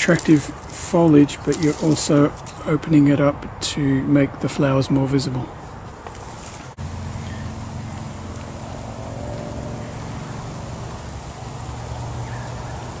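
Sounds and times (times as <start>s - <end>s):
low mechanical drone: 6.8s - 13.0s.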